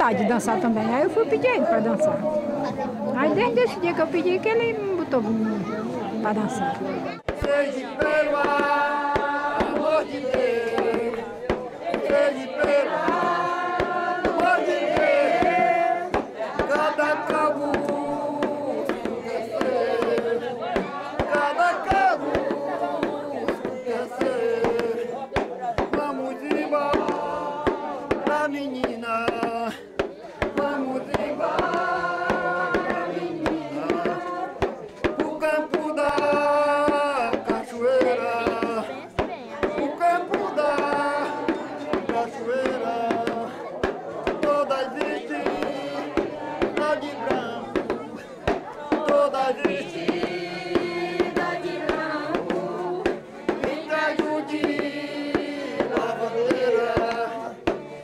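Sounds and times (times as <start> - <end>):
voices singing a chant: 0.0 - 58.0.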